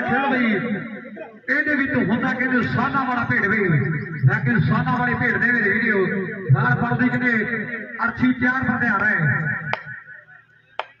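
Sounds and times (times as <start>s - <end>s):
man commentating: 0.0s - 9.6s.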